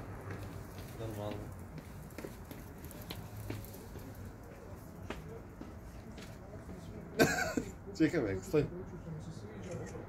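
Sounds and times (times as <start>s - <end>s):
person coughing: 7.2s - 7.7s.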